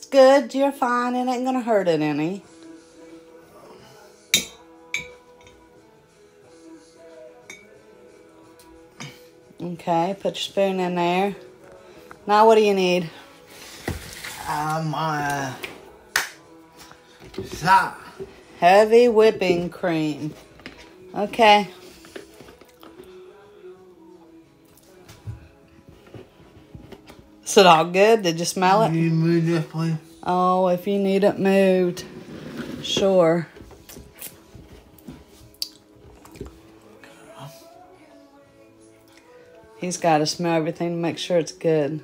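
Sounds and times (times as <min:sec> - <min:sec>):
quiet background music: 0:00.0 - 0:42.0.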